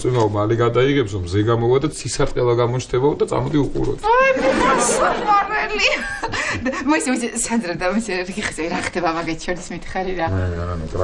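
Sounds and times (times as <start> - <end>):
man and woman talking: 10.1 - 11.0.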